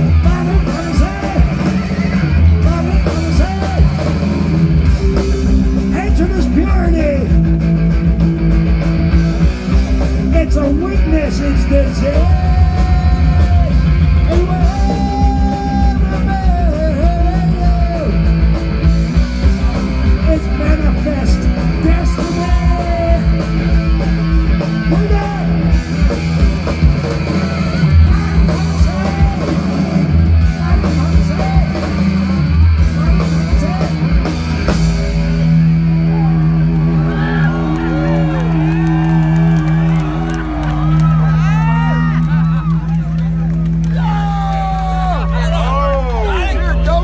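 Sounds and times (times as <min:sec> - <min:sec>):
fast drums: 0:00.0 - 0:45.5
bass guitar: 0:00.0 - 0:47.0
distorted electric guitars: 0:00.0 - 0:47.0.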